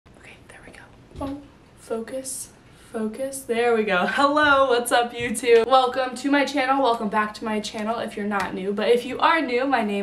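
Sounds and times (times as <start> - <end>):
woman whispering: 0.2 - 1.0
woman speaking: 0.6 - 10.0.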